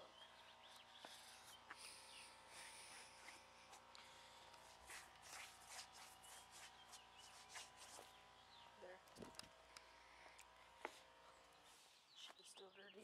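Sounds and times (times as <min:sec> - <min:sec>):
shoe sole scraping ground: 0:04.6 - 0:08.2.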